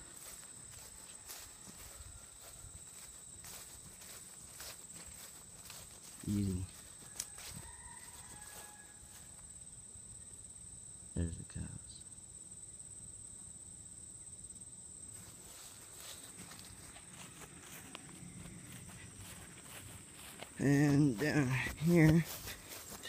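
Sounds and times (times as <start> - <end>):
footsteps through long grass: 0.0 - 9.4, 15.1 - 23.0.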